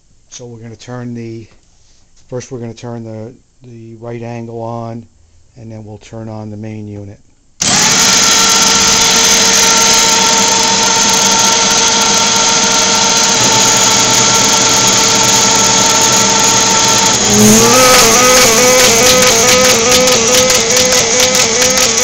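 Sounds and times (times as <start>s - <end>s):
paper folder motors whining: 7.6s - 22.0s.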